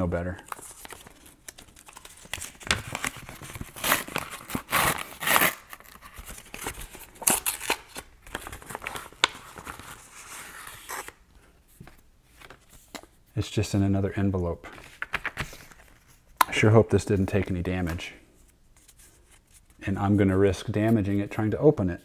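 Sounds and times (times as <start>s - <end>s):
paper envelope tearing: 0.5s - 11.2s.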